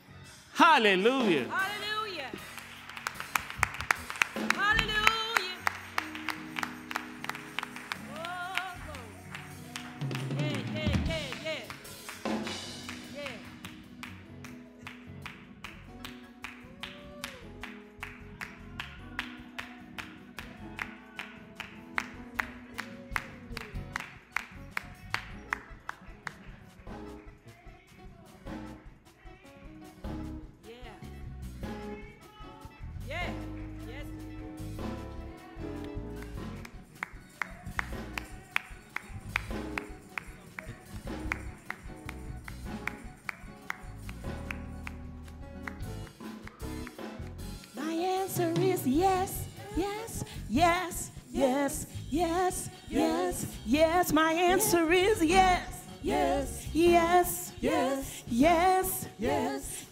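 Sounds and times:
bass: 0:00.0 - 0:59.8
sustained keyboard chords: 0:32.9 - 0:59.8.

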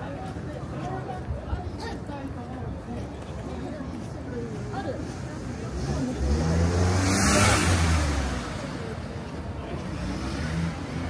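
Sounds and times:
faint people talking: 0:00.0 - 0:11.0
vehicle passing by: 0:05.4 - 0:11.0.

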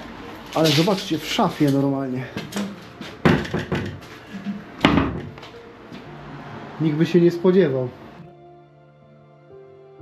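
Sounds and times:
wooden wardrobe door knocks: 0:03.2 - 0:04.0, 0:04.8 - 0:05.4.

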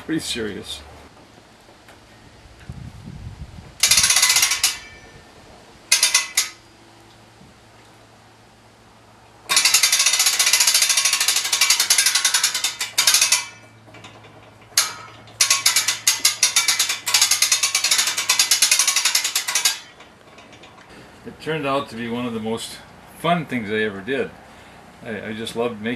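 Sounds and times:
winch ratchet clicking: 0:03.8 - 0:05.0, 0:05.9 - 0:06.6, 0:09.5 - 0:20.9.

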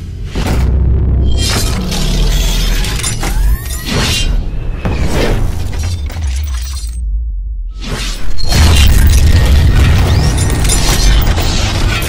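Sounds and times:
deep bass rumble: 0:00.3 - 0:03.6, 0:04.3 - 0:11.8
bass-heavy hit: 0:07.0 - 0:11.4.

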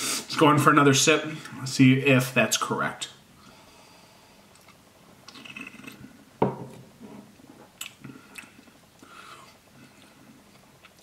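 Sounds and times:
person sipping and swallowing: 0:04.5 - 0:06.2
wet mouth sounds: 0:04.5 - 0:06.2.

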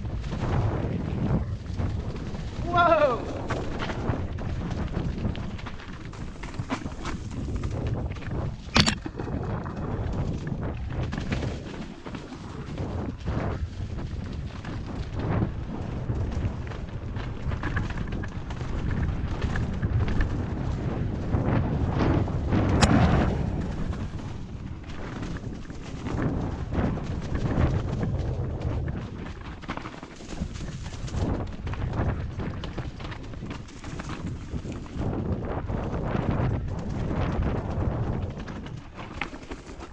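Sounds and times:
bike tyres clattering over roots: 0:00.0 - 0:39.9
wind rumbling on microphone: 0:00.0 - 0:39.9.

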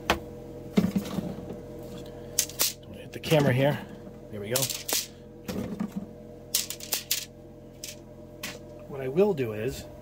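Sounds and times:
trays clattering and clicking: 0:04.5 - 0:08.6.

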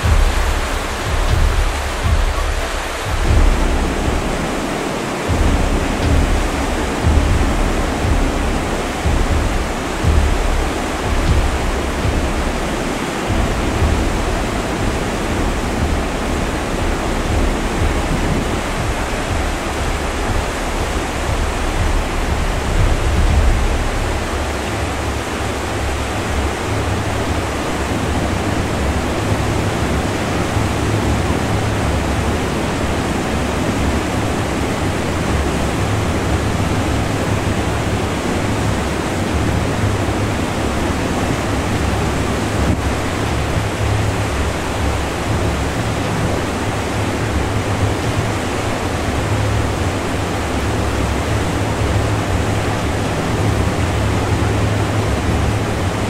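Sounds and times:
low rumble: 0:00.0 - 0:56.0
river water rushing over boulders: 0:00.0 - 0:56.0.

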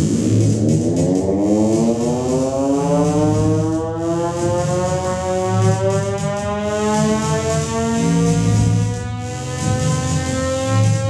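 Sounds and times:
buzzy electronic feedback drone: 0:00.0 - 0:11.0.

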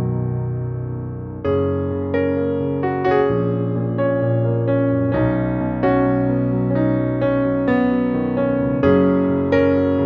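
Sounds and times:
calm slow piano music: 0:00.0 - 0:10.0.

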